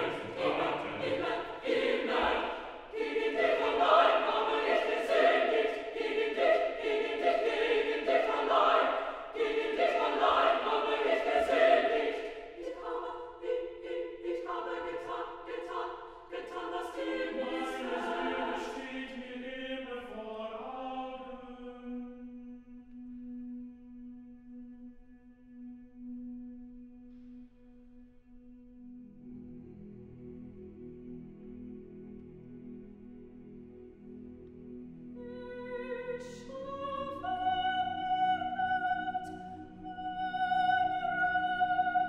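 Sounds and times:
choir singing a cappella: 0.0s - 27.4s, 30.3s - 42.0s.

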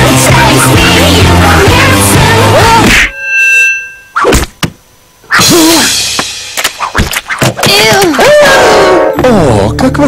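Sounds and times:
ringing pitched tones: 2.7s - 4.4s.

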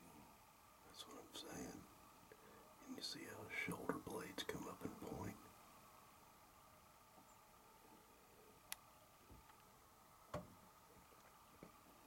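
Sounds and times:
whispered speech: 0.9s - 1.9s, 2.8s - 5.4s.

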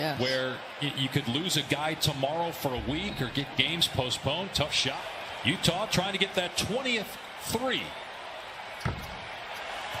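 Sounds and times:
arena court ambience: 0.0s - 10.0s.

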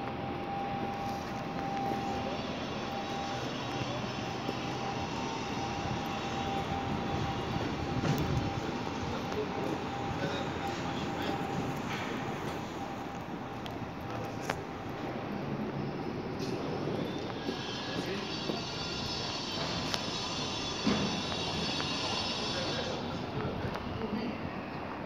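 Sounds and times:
city street background noise: 0.0s - 25.0s
thin constant whine: 0.0s - 25.0s.

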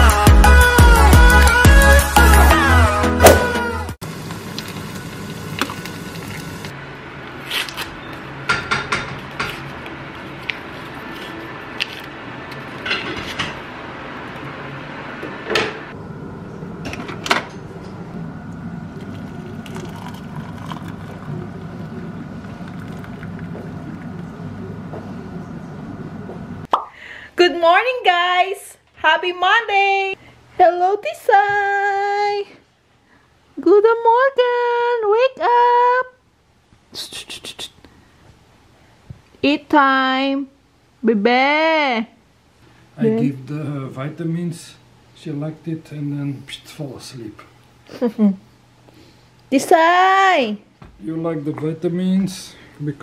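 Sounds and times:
water pouring into a mug: 18.9s - 24.4s.

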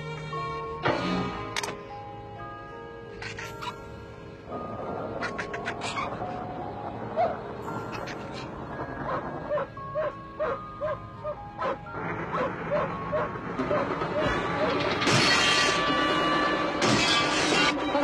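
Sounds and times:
film music: 0.0s - 18.0s
dog barking and whining: 5.2s - 15.7s.

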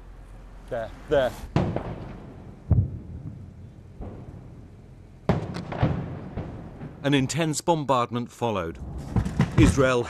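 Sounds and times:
distant shell explosion boom: 1.5s - 7.1s, 8.8s - 10.0s
sharp knocks: 8.9s - 10.0s.

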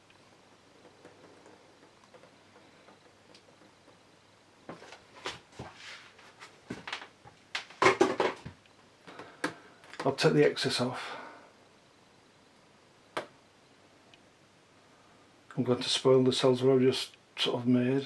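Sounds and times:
record handling knocks and clicks: 6.7s - 10.1s.

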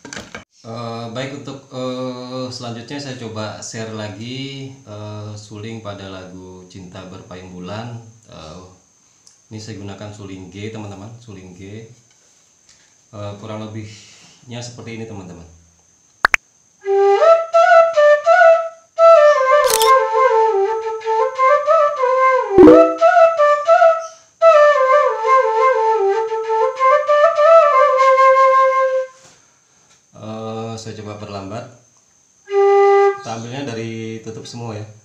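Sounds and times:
bamboo flute melody: 16.9s - 29.1s, 32.5s - 33.3s.

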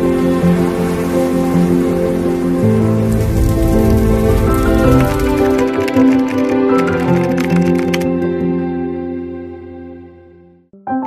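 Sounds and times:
sustained chords music: 0.0s - 10.9s
low rumble: 2.7s - 6.6s
crackling hiss: 2.9s - 7.1s.

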